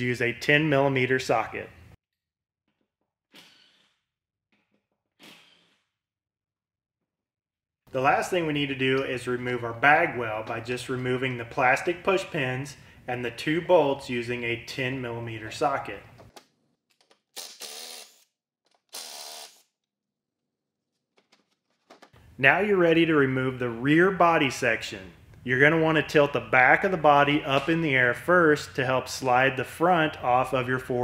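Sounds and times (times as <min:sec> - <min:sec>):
cordless drill running: 0:17.4 - 0:18.3, 0:18.9 - 0:19.7.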